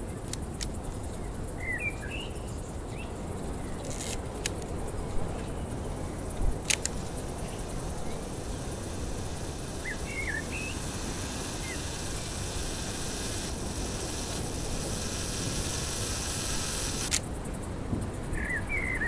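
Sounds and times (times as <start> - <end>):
wind hiss: 0.0 - 19.0
sharp click: 0.2 - 0.8, 6.6 - 7.1, 12.7 - 17.3
bird chirps: 9.8 - 11.0.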